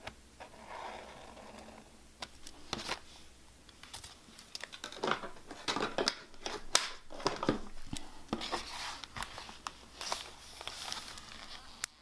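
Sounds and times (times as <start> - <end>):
paper rustling: 3.9 - 11.8.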